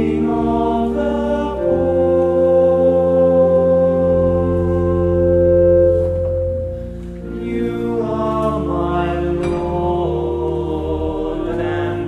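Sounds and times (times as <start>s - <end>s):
electronic organ bass notes: 0.0s - 12.0s
male ensemble singing chords: 0.0s - 12.0s.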